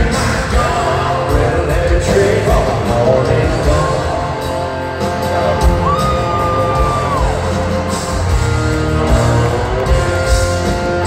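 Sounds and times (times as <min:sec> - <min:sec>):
live country-rock band: 0:00.0 - 0:11.0.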